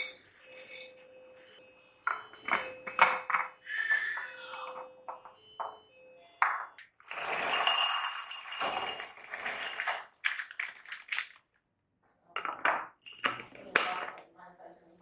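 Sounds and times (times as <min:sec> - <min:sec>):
dry pasta pouring into glass jar: 0:07.1 - 0:11.2.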